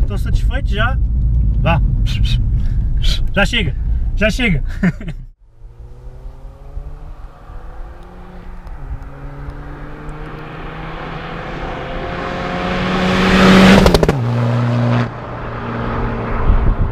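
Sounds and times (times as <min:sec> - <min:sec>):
turbodiesel engine accelerating: 0:00.0 - 0:04.7, 0:05.4 - 0:16.9.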